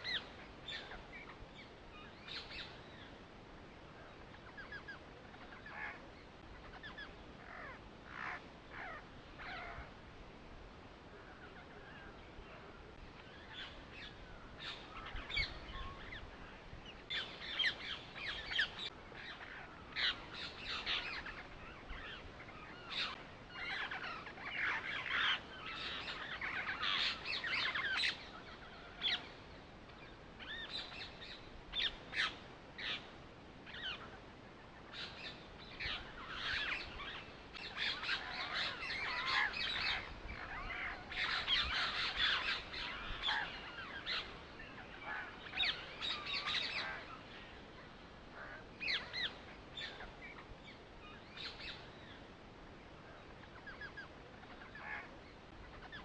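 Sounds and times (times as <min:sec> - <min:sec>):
birds chirping: 0:00.0 - 0:10.0, 0:11.0 - 0:56.0.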